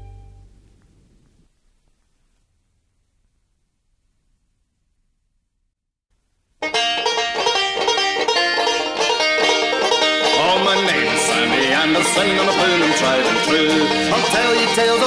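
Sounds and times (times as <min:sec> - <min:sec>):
plucked strings: 0:00.0 - 0:00.8, 0:06.6 - 0:15.0
quickly picked banjo: 0:06.6 - 0:15.0.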